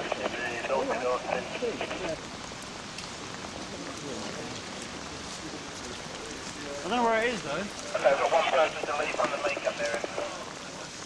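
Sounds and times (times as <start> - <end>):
rain falling on wet street: 0.0 - 11.0
sharp raindrops: 0.0 - 11.0.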